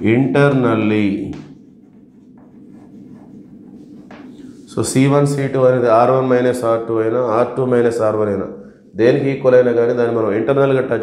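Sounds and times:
chalk scratching on chalkboard: 1.4s - 4.8s.

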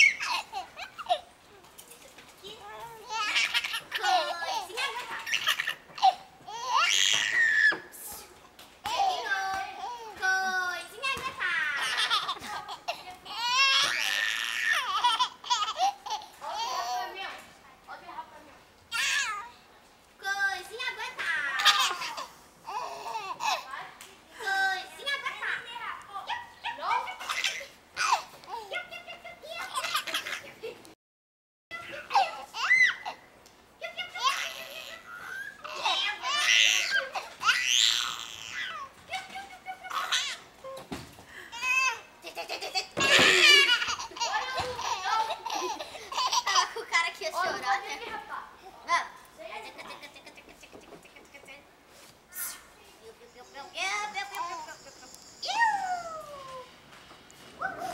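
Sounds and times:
baby laughing: 0.0s - 1.3s, 3.1s - 7.2s, 11.8s - 17.0s, 41.6s - 46.8s.

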